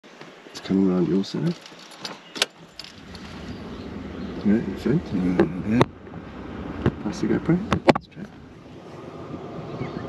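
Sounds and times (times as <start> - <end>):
low engine rumble: 2.6 - 10.0.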